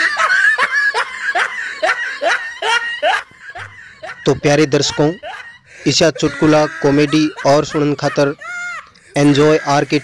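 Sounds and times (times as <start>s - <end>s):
person laughing: 0.0s - 10.0s.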